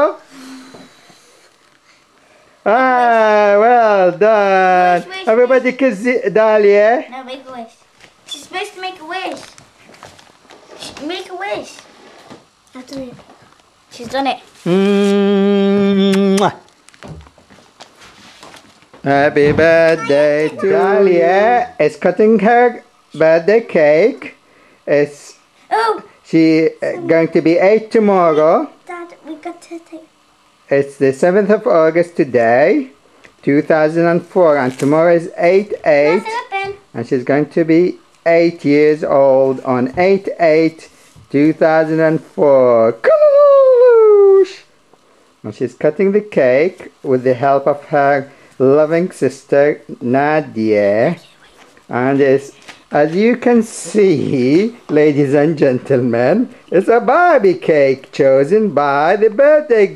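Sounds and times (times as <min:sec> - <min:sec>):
child calling out: 0:19.9 - 0:21.0.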